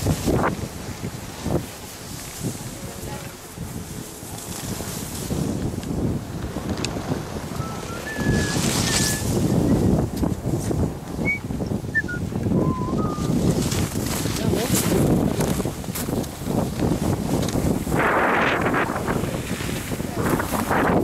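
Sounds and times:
skis sliding on packed snow: 0.0s - 11.2s, 13.2s - 21.0s
wind buffeting microphone: 0.0s - 21.0s.

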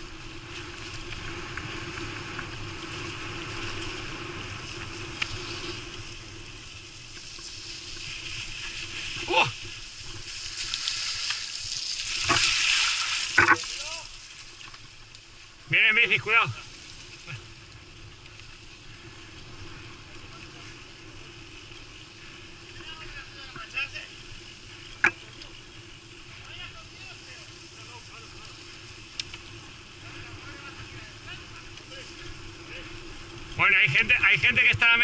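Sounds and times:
bike tyres rolling on dirt: 0.0s - 35.0s
faint voices of riders: 15.7s - 17.5s, 18.8s - 35.0s.

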